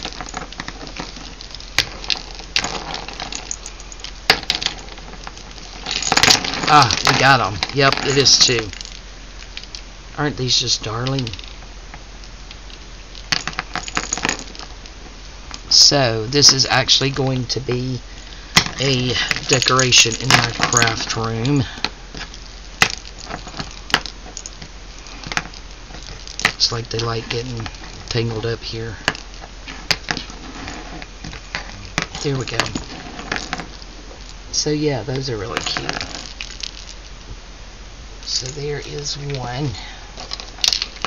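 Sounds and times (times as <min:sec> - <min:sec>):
jingle bells rustling and clicking: 0:00.0 - 0:09.9, 0:10.8 - 0:37.2, 0:38.2 - 0:41.0
jingle bells jingling: 0:01.1 - 0:09.0, 0:18.8 - 0:21.7.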